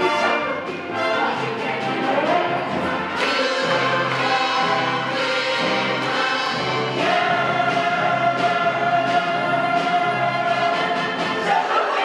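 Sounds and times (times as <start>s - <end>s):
pit orchestra playing: 0.0s - 12.0s
cast singing in chorus: 3.1s - 12.0s.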